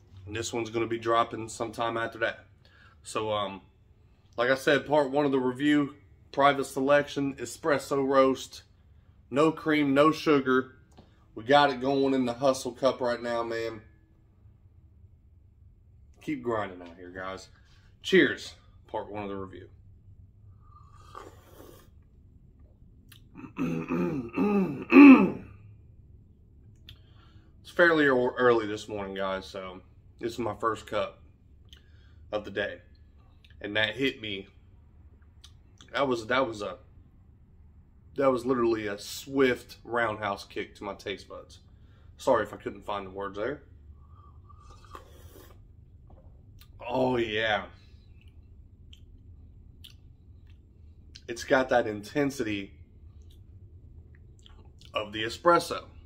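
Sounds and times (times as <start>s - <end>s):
low room hum: 0.0s - 56.0s
man sipping coffee: 20.5s - 22.1s, 44.0s - 46.8s
lip and tongue clicks: 49.8s - 51.3s.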